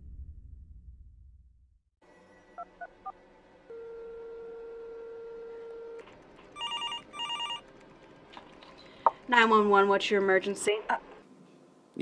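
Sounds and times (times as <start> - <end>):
electronic telephone ringing: 6.6 - 7.7.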